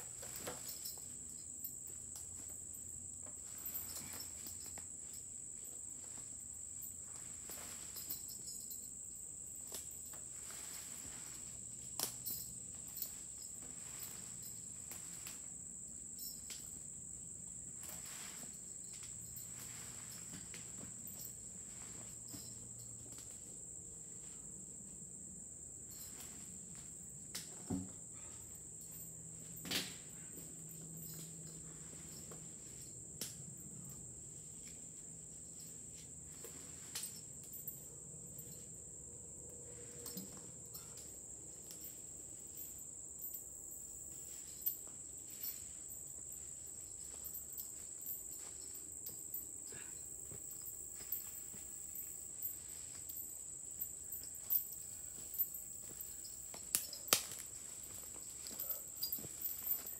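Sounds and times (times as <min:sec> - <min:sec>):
insect chorus drone: 0:00.0 - 0:59.9.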